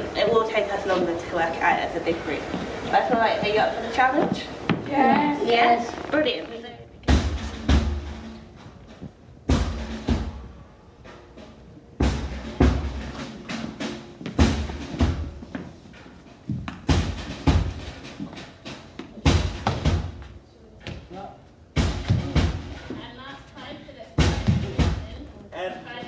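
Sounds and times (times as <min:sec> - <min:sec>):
voices of a group: 0:00.0 - 0:07.2
heavy drum hits: 0:07.0 - 0:15.7, 0:16.5 - 0:20.3, 0:21.7 - 0:23.3, 0:24.1 - 0:25.3.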